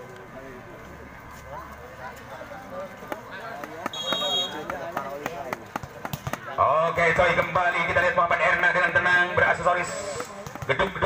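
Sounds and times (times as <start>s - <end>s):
crowd voices: 0.0s - 11.0s
ball taps: 3.1s - 6.5s, 10.2s - 11.0s
referee's whistle: 3.9s - 4.7s.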